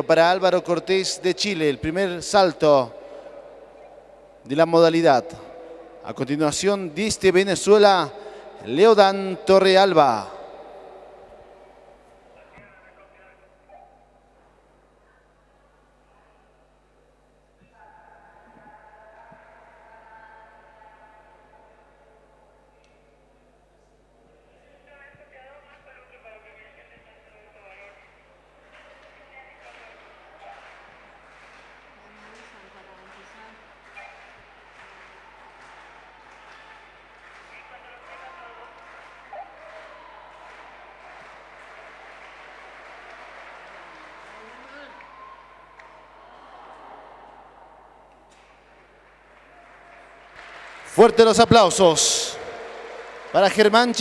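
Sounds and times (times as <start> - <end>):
distant echoing crowd murmur: 0.0 - 17.0, 27.3 - 54.0.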